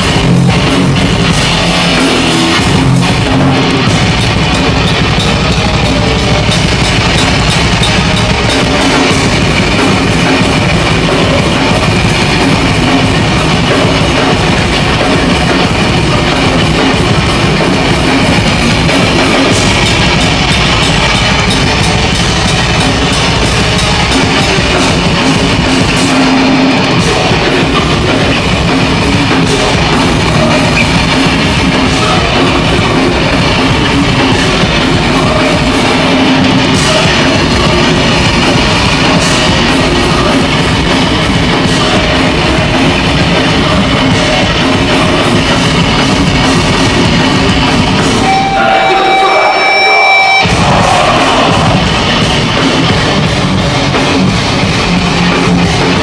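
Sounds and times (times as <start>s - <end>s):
distorted electric guitars: 0.0s - 56.0s
heavy rock band playing: 0.0s - 56.0s
pounding drum kit: 0.0s - 56.0s.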